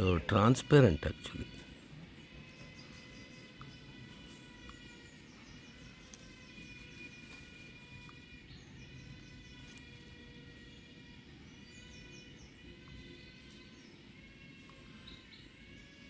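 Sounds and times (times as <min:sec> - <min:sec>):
bird chirping: 0:00.0 - 0:16.0
steady whine of held tones: 0:00.0 - 0:16.0.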